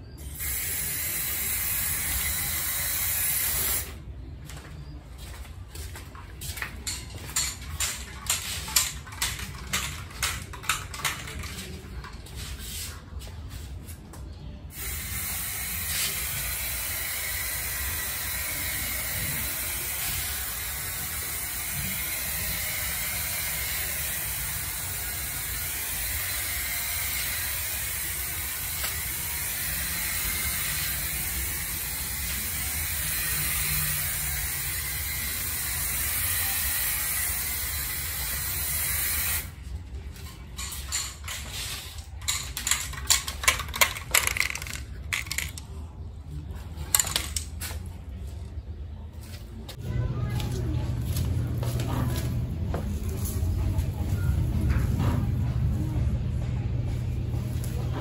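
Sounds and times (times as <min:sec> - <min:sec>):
spray can hissing: 0:00.4 - 0:04.0, 0:14.7 - 0:39.5.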